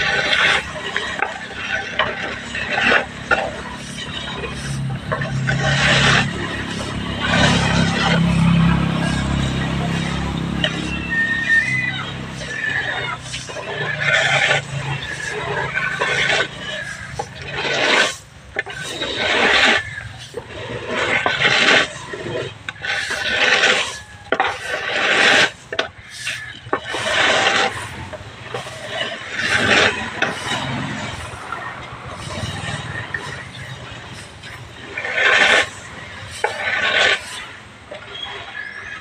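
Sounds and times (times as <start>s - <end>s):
corn raked across concrete: 0.0s - 39.0s.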